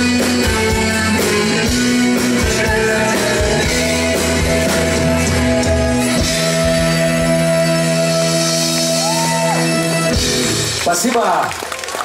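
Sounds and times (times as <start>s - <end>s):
rock band sustained chord: 0.0s - 10.8s
audience shouting and cheering: 6.8s - 12.0s.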